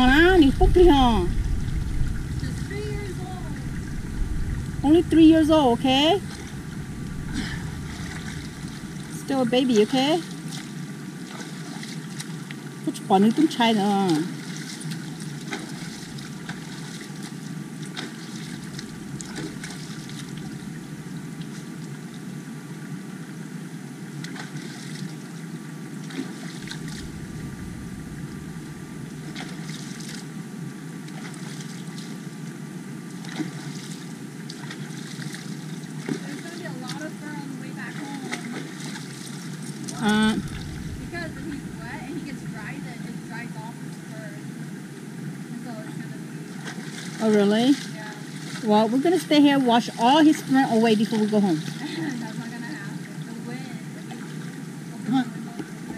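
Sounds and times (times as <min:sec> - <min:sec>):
voices: 0:00.0 - 0:01.4, 0:02.3 - 0:04.1, 0:04.8 - 0:10.3, 0:12.9 - 0:14.4, 0:36.2 - 0:38.8, 0:39.9 - 0:44.5, 0:45.5 - 0:46.6, 0:47.2 - 0:55.9
water splashes: 0:00.0 - 0:22.9, 0:24.1 - 0:30.4, 0:31.0 - 0:32.4, 0:33.1 - 0:55.9
creek water running over rocks: 0:00.0 - 0:55.9.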